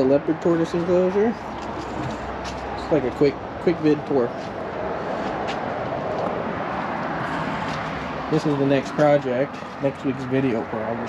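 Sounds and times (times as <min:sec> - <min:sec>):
rushing outdoor background noise: 0:00.0 - 0:11.0.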